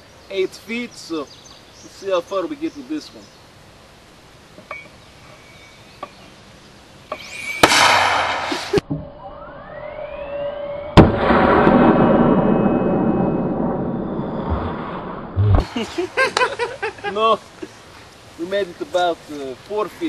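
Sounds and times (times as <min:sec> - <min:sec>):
loud rushing noise: 0:07.3 - 0:08.8
short loud burst: 0:07.3 - 0:08.8
mortar firing crack: 0:07.6 - 0:08.8.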